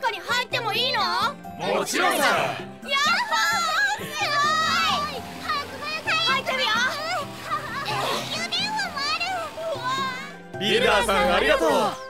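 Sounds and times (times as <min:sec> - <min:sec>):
light background music: 0:00.0 - 0:12.0
children exclaiming excitedly: 0:01.6 - 0:12.0.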